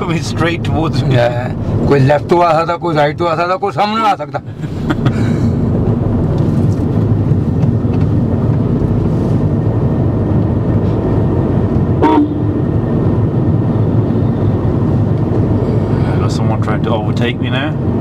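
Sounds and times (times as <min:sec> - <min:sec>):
car road and engine rumble: 0:00.0 - 0:18.0
vehicle horn toot: 0:12.0 - 0:12.6.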